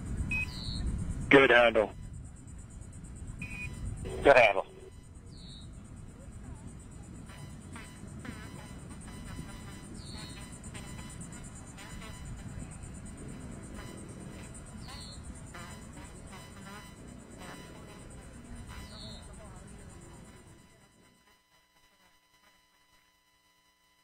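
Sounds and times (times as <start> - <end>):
radio hiss and rumble: 1.1 - 22.7
faint voices: 1.3 - 2.0, 4.0 - 5.2, 5.8 - 8.9, 17.1 - 21.2.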